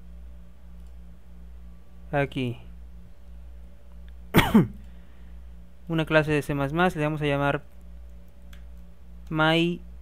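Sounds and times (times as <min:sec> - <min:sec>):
steady low hum: 0:00.0 - 0:10.0
man coughing: 0:04.3 - 0:04.8.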